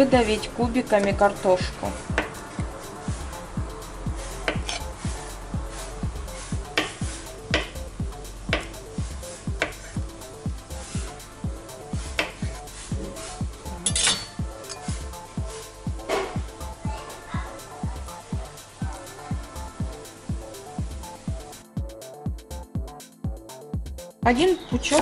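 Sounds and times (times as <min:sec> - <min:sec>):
background music with steady beat: 0:00.0 - 0:25.0.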